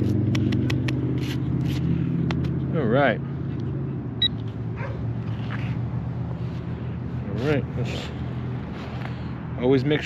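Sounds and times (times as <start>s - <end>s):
trowel scraping sandy soil: 0.0s - 2.0s.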